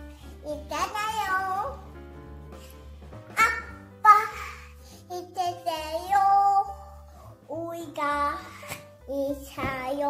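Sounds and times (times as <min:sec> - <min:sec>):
children's song backing track: 0:00.0 - 0:10.0.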